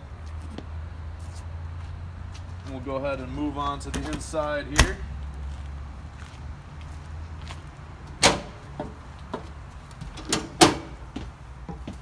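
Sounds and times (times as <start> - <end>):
footsteps on metal steps: 6.2 - 12.0.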